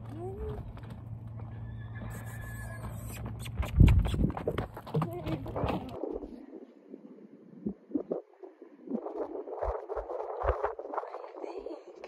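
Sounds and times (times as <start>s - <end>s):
horse hooves on gravel: 0.0s - 6.0s.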